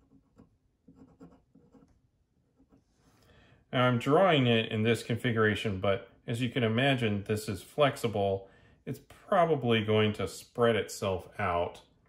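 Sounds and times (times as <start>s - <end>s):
pen scratching on paper: 0.0s - 2.8s.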